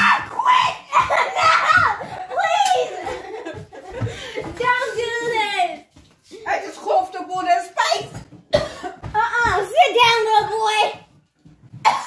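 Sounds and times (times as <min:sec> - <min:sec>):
child's high-pitched voice: 0:04.5 - 0:05.9, 0:09.2 - 0:11.1.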